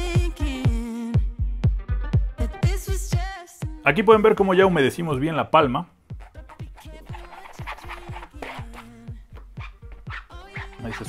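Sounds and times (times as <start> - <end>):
electronic music with steady beat: 0.0 - 11.0.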